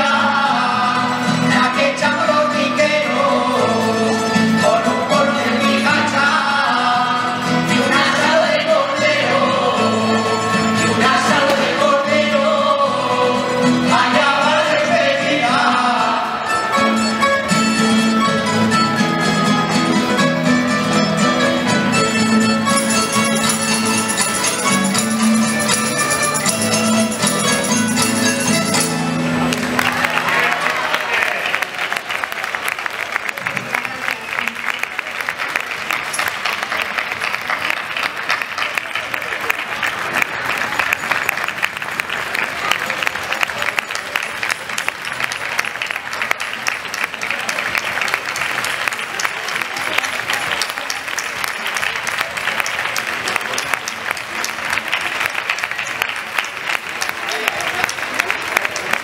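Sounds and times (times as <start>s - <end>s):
folk music with tambourine: 0.0s - 29.8s
audience applauding: 29.3s - 59.0s.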